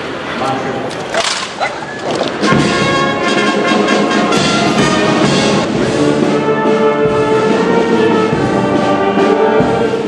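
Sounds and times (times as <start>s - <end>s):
brass band playing held chords: 2.4s - 10.0s.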